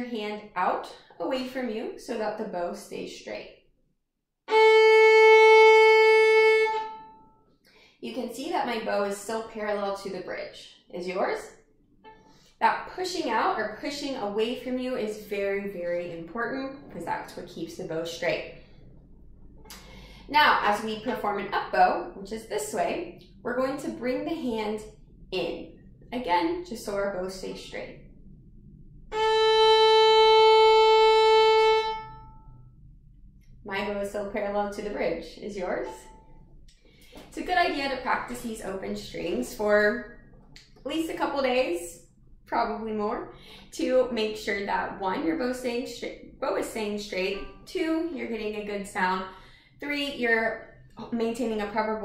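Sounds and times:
violin note on open string: 0:04.5 - 0:07.4, 0:29.1 - 0:32.6.

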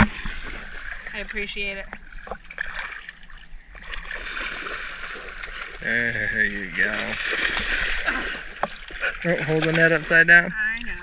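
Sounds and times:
shallow water splashing: 0:00.0 - 0:11.0.

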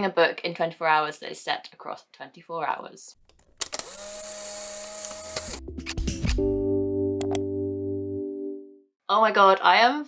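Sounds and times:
camera shutter click: 0:03.6 - 0:05.6
motor whirr: 0:03.6 - 0:05.6.

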